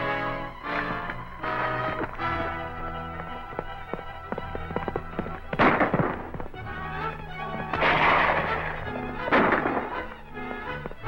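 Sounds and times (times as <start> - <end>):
orchestral music: 0.0 - 11.0
galloping hoofbeats: 0.7 - 11.0
loud gunshot-like bang: 9.3 - 10.0.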